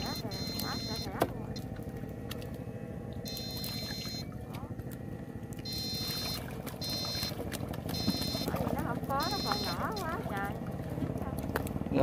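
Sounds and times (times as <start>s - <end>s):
low mechanical drone: 0.0s - 12.0s
high-pitched inverter whine bursts: 3.1s - 4.4s, 5.3s - 10.2s.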